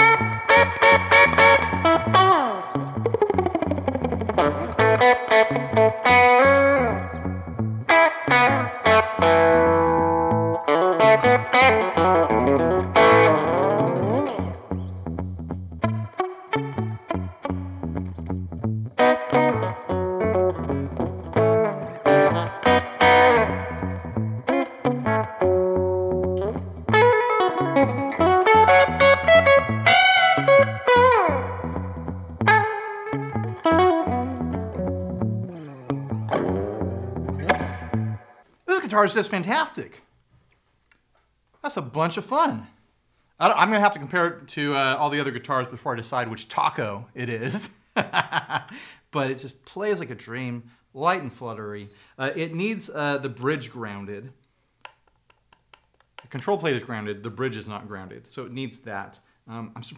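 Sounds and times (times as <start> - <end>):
twangy electric guitar: 0.0 - 38.4.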